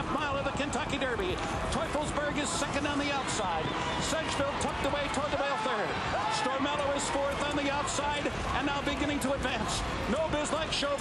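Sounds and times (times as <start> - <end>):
man commentating a horse race: 0.0 - 11.0.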